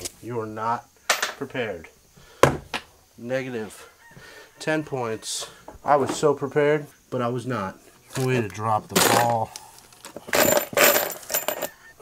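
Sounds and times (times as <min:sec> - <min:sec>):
metal hardware jingling in plastic bin: 0:08.1 - 0:11.8.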